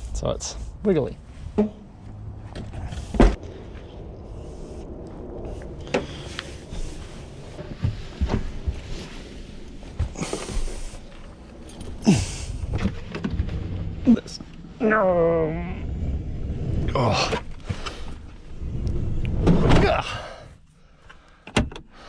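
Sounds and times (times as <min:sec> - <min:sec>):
knocks and bumps in a van: 0:01.4 - 0:03.4, 0:07.5 - 0:09.2, 0:12.6 - 0:14.0, 0:19.4 - 0:20.3.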